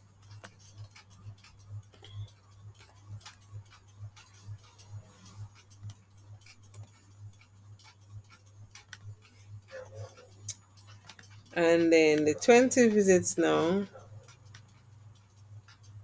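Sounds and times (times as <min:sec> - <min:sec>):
keyboard and mouse clicks: 0:00.0 - 0:16.0
steady low ticking: 0:00.0 - 0:16.0.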